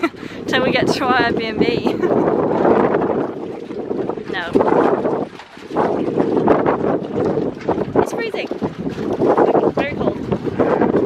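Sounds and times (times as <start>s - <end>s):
gusty wind on microphone: 0.0s - 11.0s.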